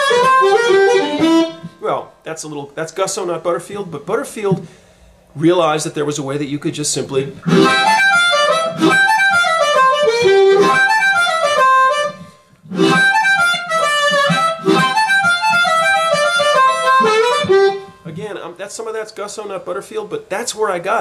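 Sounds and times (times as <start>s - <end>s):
blues harmonica: 0.0s - 1.8s, 7.4s - 18.2s.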